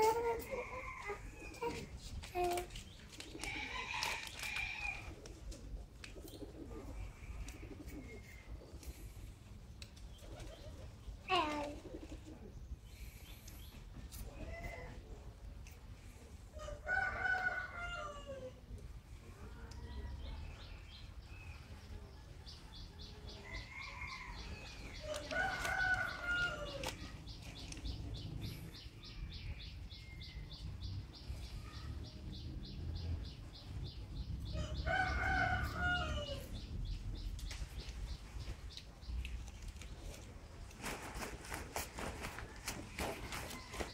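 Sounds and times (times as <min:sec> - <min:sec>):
roosters crowing: 0:00.0 - 0:01.9, 0:03.4 - 0:05.2, 0:16.6 - 0:18.6, 0:23.3 - 0:27.2, 0:34.4 - 0:36.7
chicken calls: 0:21.9 - 0:30.1.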